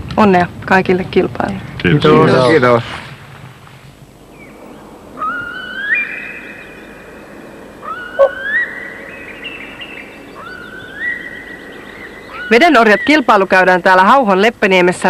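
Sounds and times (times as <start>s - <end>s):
loon wailing: 4.7s - 13.3s.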